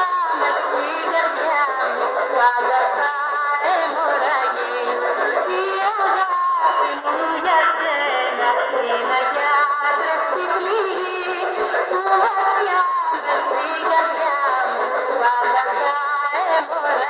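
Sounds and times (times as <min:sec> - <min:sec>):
music with singing on radio: 0:00.0 - 0:17.0.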